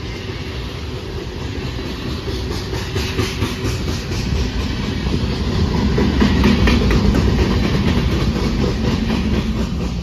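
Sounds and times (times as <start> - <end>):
train wheels rumbling and clacking: 0.0 - 10.0.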